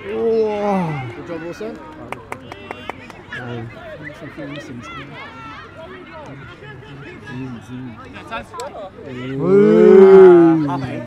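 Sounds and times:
person's long drawn-out call: 9.4s - 10.6s.

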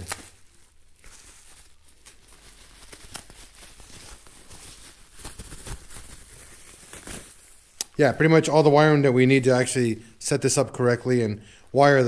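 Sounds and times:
bubble wrap rustling and crinkling: 0.0s - 7.8s.

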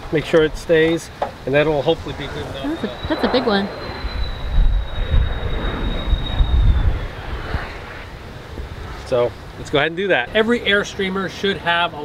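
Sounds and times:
airplane rumble passing overhead: 0.0s - 12.0s
high-pitched jet whine: 0.5s - 12.0s.

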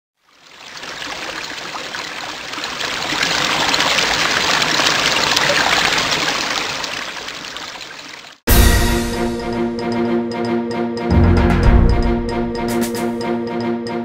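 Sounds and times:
trickling water with droplet splashes: 0.2s - 8.4s.

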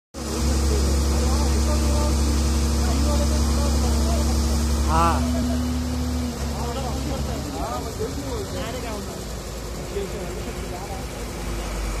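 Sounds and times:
diesel engine droning: 0.2s - 12.0s
man calling out: 4.8s - 5.6s.

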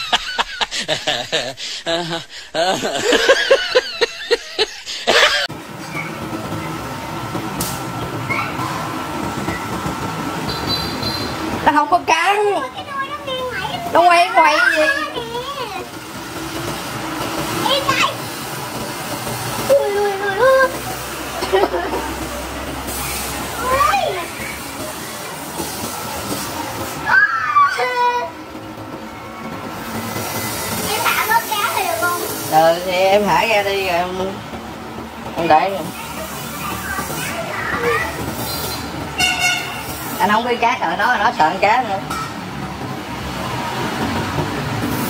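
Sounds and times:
horn toot: 39.2s - 39.9s.

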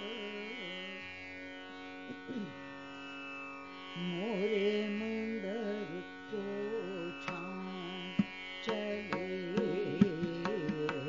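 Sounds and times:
woman singing: 0.0s - 1.0s, 4.0s - 11.0s
tanpura drone: 0.0s - 11.0s
tabla strokes: 8.2s - 11.0s.

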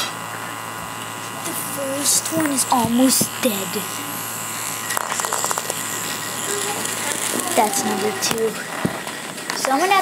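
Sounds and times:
toy electric motor whirring: 0.0s - 10.0s.

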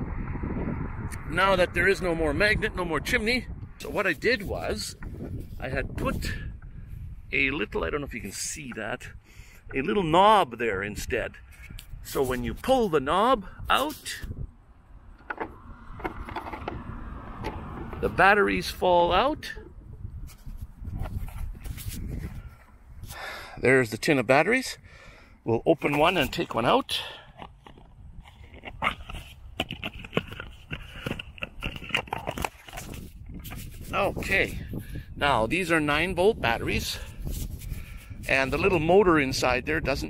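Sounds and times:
road traffic rumble: 0.0s - 7.4s, 11.4s - 35.2s
clicks and knocks on wood: 15.2s - 18.0s, 27.4s - 33.7s.

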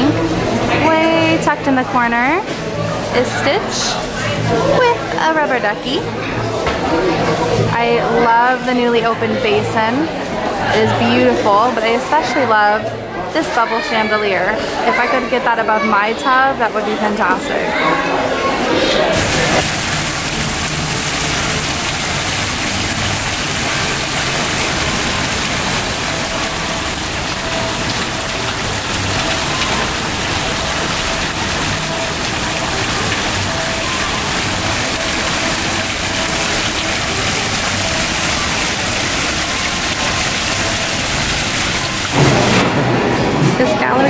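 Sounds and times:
water splashing into fountain: 18.8s - 44.0s.

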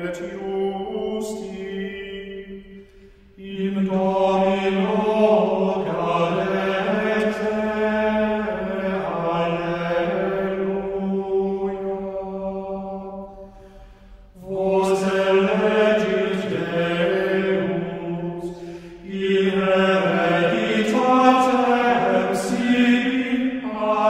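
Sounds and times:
man singing unaccompanied chant: 0.0s - 2.4s.

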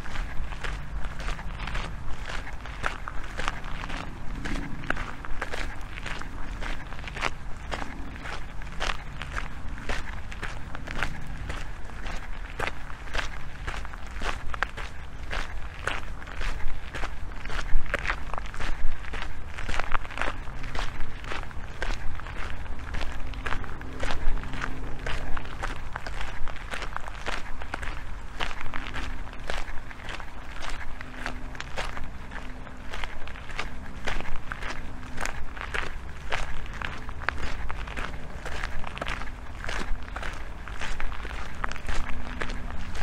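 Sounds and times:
footsteps crunching on gravel: 0.0s - 43.0s
low steady rumble: 0.0s - 43.0s.

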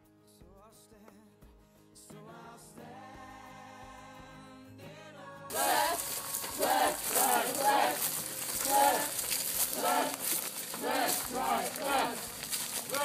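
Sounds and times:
background music held notes: 5.5s - 13.0s
outdoor noise: 5.5s - 13.0s
young people talking and calling: 5.5s - 13.0s.

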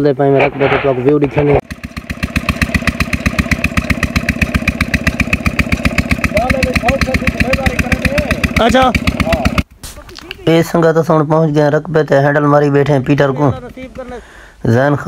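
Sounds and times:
diesel engine chugging: 1.3s - 9.7s, 13.1s - 14.6s.

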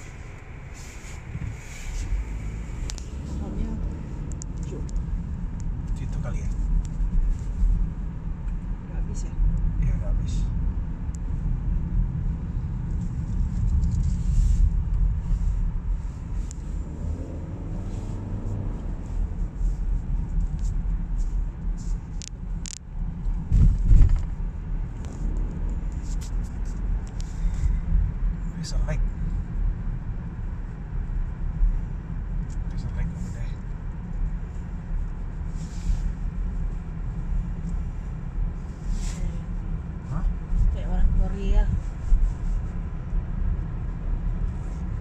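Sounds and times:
car engine and tyre rumble: 0.0s - 45.0s.

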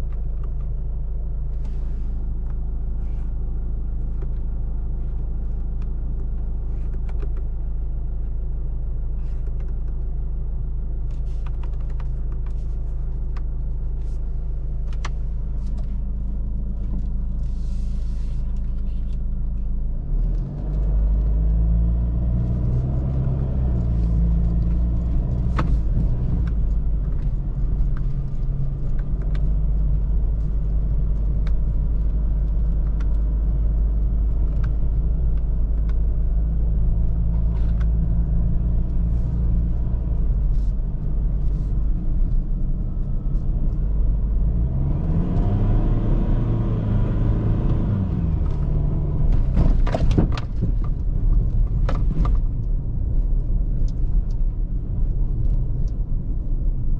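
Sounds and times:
engine rumble from inside a cab: 0.0s - 56.9s
knocks and rattles over bumps: 48.3s - 54.5s.

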